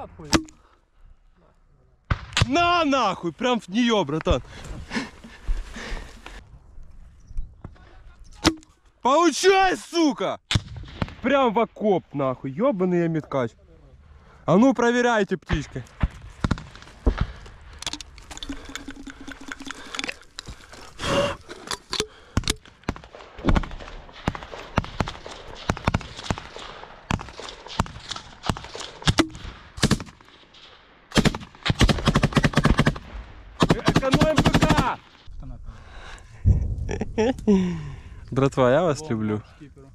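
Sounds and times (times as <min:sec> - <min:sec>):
rifle fire: 0:22.4 - 0:34.9
rapid automatic gunfire: 0:31.1 - 0:33.0, 0:33.6 - 0:34.9.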